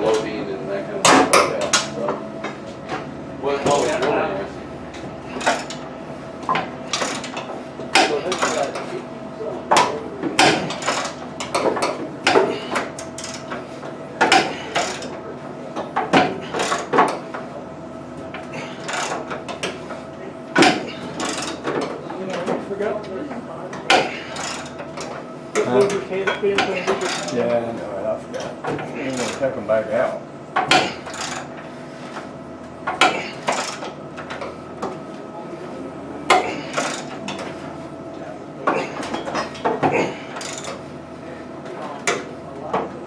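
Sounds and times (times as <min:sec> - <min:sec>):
steady hum: 0:00.0 - 0:43.0
ratchet wrench clicking: 0:31.0 - 0:31.4.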